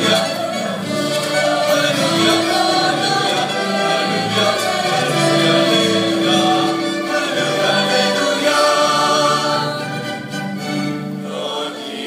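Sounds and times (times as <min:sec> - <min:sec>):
large choir singing: 0:00.0 - 0:12.0.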